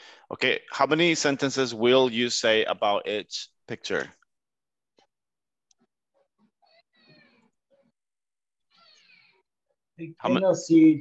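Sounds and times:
faint descending cries: 0:06.4 - 0:08.0, 0:08.7 - 0:09.5.

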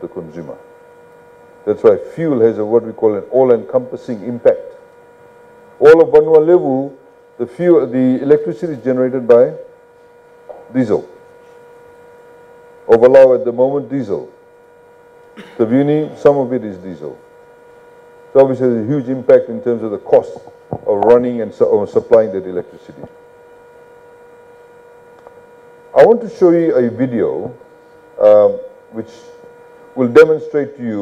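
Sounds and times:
man speaking: 0:00.0 - 0:00.6, 0:01.7 - 0:04.8, 0:05.8 - 0:09.7, 0:10.6 - 0:11.2, 0:12.9 - 0:14.4, 0:15.6 - 0:17.2, 0:18.4 - 0:23.1, 0:26.0 - 0:27.6, 0:28.2 - 0:29.4, 0:30.0 - 0:31.0
electrical hum: 0:00.0 - 0:31.0.

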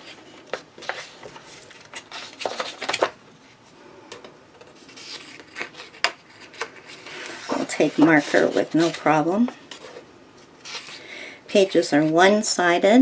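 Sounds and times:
paper pages rustling: 0:00.0 - 0:03.1, 0:04.6 - 0:10.0, 0:10.6 - 0:11.0.

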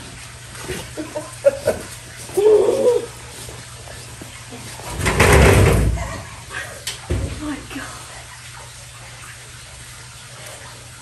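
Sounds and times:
metal hull landing on sawhorses: 0:04.9 - 0:06.2.

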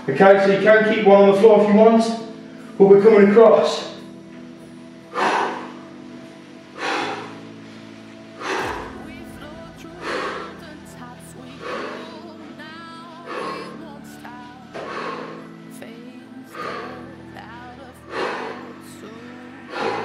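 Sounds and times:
background music with held tones: 0:00.0 - 0:20.0
man breathing out forcefully: 0:05.1 - 0:05.8, 0:06.8 - 0:07.4, 0:08.4 - 0:09.0, 0:09.9 - 0:10.6, 0:11.6 - 0:12.0, 0:14.8 - 0:15.5, 0:18.1 - 0:18.6, 0:19.6 - 0:20.0.

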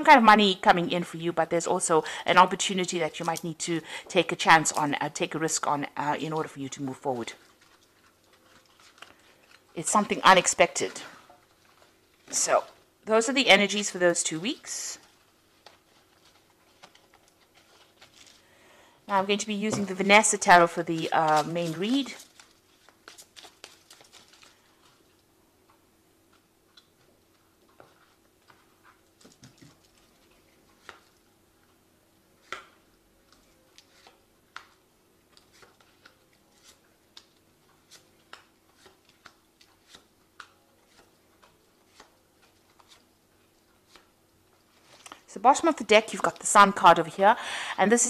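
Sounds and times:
faint steady hum: 0:00.0 - 0:48.0
cards being shuffled: 0:15.0 - 0:18.4, 0:19.7 - 0:25.0, 0:33.3 - 0:43.1, 0:43.7 - 0:44.1, 0:44.7 - 0:45.3.

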